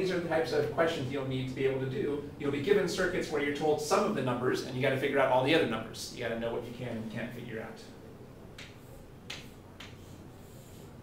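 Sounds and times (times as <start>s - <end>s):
chalk tapping on chalkboard: 8.6s - 10.8s
chalk scratching on chalkboard: 8.8s - 11.0s.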